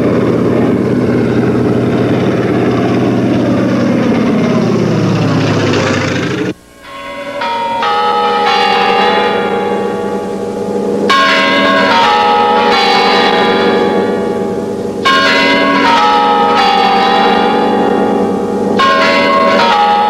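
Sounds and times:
bells ringing: 0:00.0 - 0:20.0.

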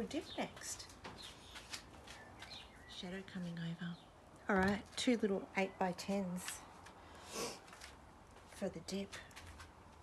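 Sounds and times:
faint songbird chirps: 0:00.0 - 0:04.2.

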